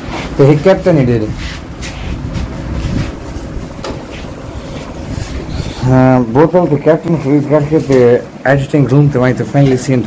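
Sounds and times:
air buffeting microphone: 0.0s - 10.0s.

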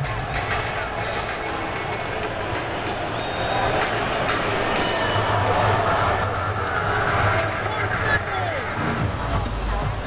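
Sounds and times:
crowd background noise: 0.0s - 10.0s
music over sound system: 0.0s - 10.0s.

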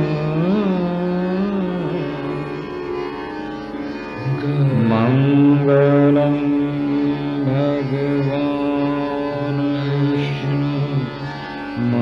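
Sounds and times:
man singing long notes: 0.0s - 3.0s, 4.2s - 12.0s
harmonium: 0.0s - 12.0s
tanpura drone: 0.0s - 12.0s.

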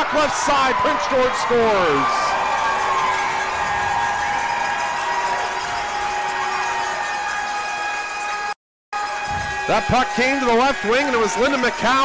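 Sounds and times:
crowd cheering: 0.0s - 12.0s
arena goal horn blaring: 5.6s - 12.0s.

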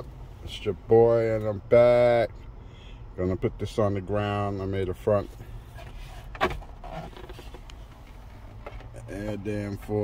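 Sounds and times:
low steady hum: 0.0s - 10.0s
faint rustling and ticks: 5.2s - 10.0s.

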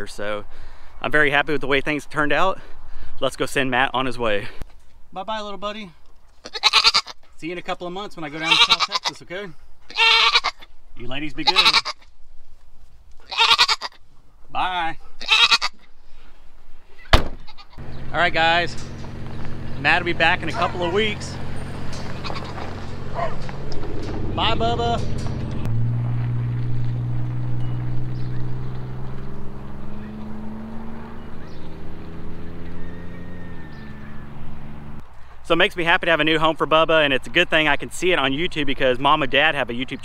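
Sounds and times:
goat bleating: 6.4s - 7.2s, 8.2s - 9.3s, 9.9s - 12.1s, 13.2s - 14.0s, 15.2s - 15.9s, 17.4s - 17.8s, 20.4s - 21.4s, 22.0s - 23.3s
car engine driving away: 17.8s - 35.1s.

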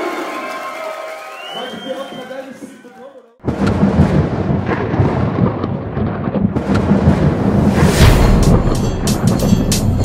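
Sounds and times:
thunder rumbling with crackling: 3.4s - 9.6s.

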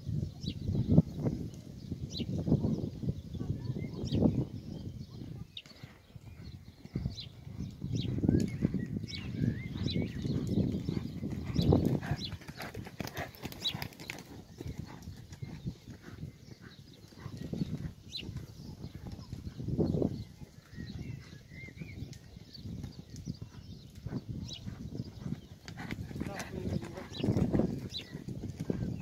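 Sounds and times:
hoofbeats on sand: 5.6s - 29.0s.

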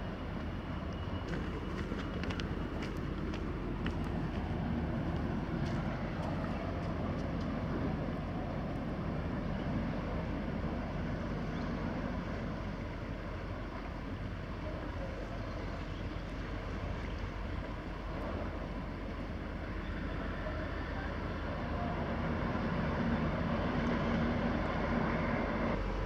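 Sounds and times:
ship engine rumble: 0.0s - 26.0s.

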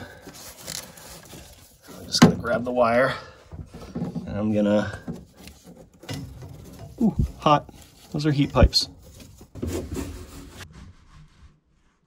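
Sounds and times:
hand handling plastic cable: 0.0s - 10.6s.

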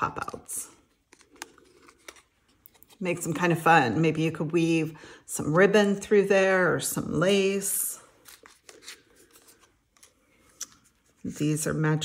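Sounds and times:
card rustling against fingers: 0.7s - 3.6s, 8.1s - 11.4s.

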